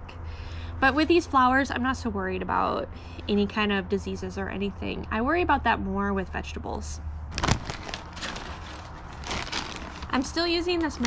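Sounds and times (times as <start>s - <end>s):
plastic bag crinkling: 7.3s - 11.0s.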